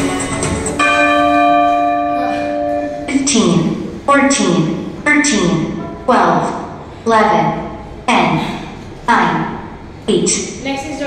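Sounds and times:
bell ringing: 0.7 - 3.3.

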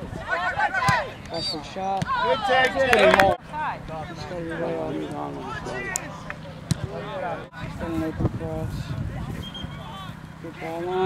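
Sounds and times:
people shouting: 0.0 - 4.6.

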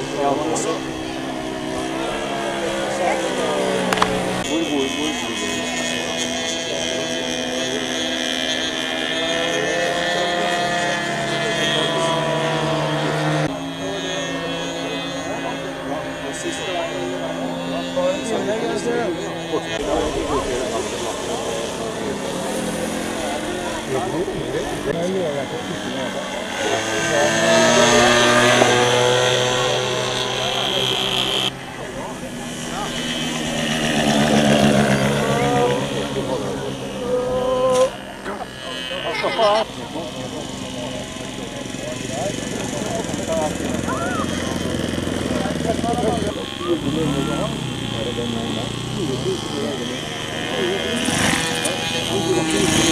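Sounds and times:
model airplane engines droning: 0.0 - 52.9.

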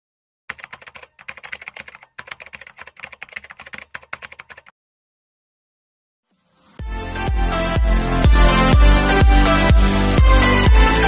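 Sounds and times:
computer keyboard key clicks: 0.5 - 4.7.

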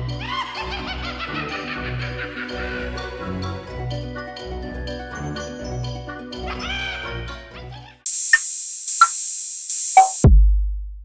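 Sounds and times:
short descending blips: 8.1 - 10.2.

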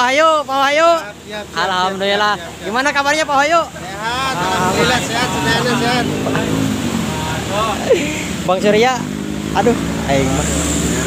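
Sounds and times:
engine humming: 0.0 - 11.0
people talking: 0.0 - 11.0.

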